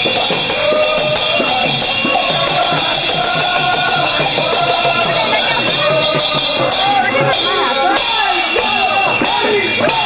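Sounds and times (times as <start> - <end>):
drum beat: 0.0 - 10.0
jingling hand percussion: 0.0 - 10.0.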